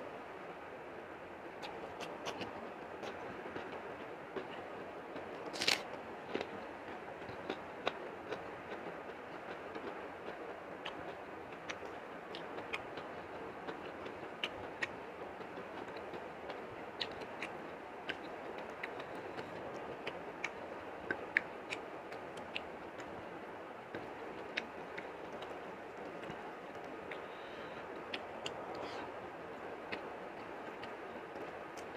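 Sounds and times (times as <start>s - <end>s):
wet eating clicks and smacks: 1.6s - 3.8s, 7.2s - 23.1s, 23.9s - 27.3s, 28.0s - 31.9s.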